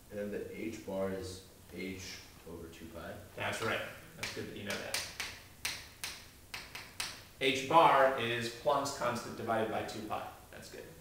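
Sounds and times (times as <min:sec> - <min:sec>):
chalk tapping and scraping on board: 0:04.2 - 0:07.2.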